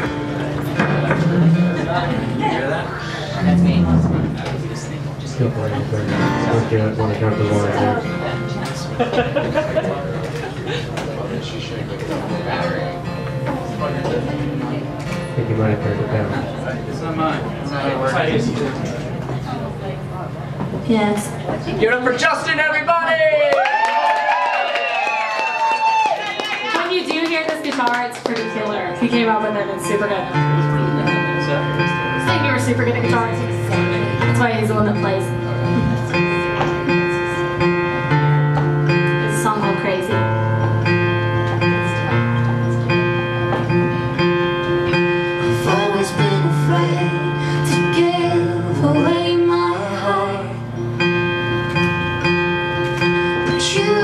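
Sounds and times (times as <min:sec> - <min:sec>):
strummed acoustic guitar: 0:00.0 - 0:19.7, 0:28.2 - 0:54.0
woman singing long notes: 0:45.5 - 0:50.7.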